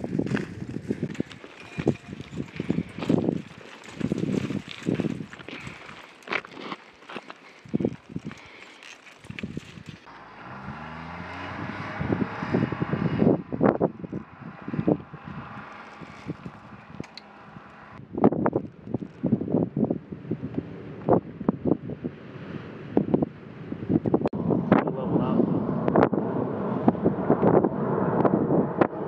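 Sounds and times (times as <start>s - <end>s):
wind buffeting microphone: 0.0s - 29.0s
jet aircraft flying overhead: 24.4s - 29.0s.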